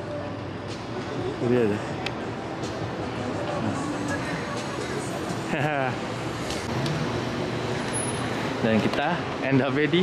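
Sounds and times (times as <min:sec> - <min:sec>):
passing road vehicles hum: 0:01.9 - 0:10.0.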